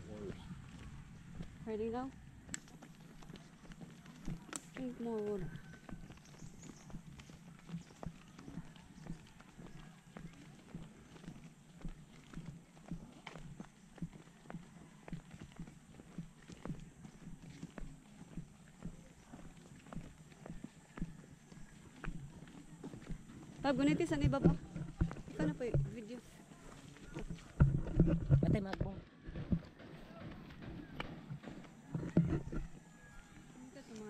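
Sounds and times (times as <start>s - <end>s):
footsteps on concrete: 0.0s - 34.0s.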